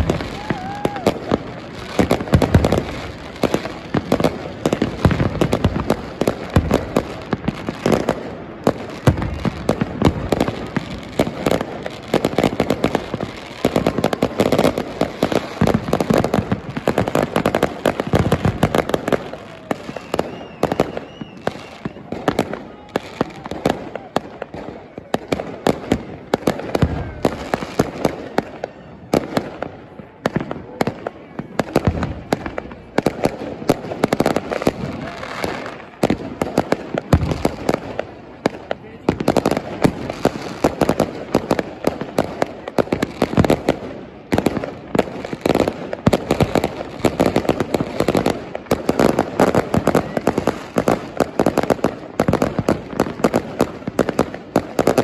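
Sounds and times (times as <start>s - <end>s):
fireworks bursting: 0.0s - 55.0s.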